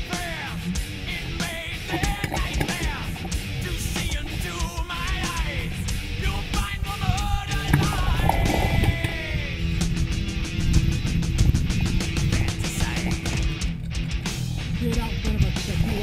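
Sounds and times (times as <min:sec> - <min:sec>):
rock music with fast beat: 0:00.0 - 0:16.0.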